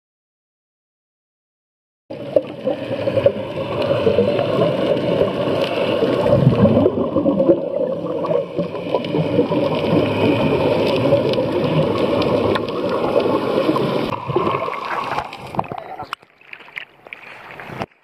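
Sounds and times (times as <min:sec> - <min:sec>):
underwater bubbles gurgling: 0:02.1 - 0:17.9.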